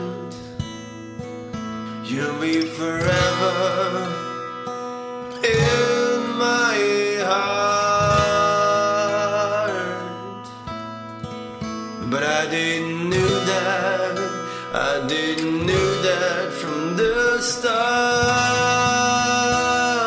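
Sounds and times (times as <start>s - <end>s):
acoustic guitar: 0.0s - 20.0s
person singing long notes: 2.1s - 4.4s, 5.3s - 10.5s, 12.0s - 20.0s.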